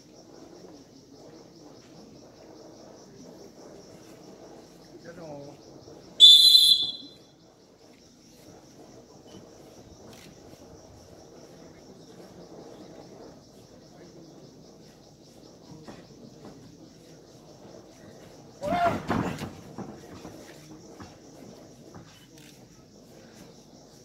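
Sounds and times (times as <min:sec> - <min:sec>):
referee's whistle blast: 0:06.2 - 0:07.2.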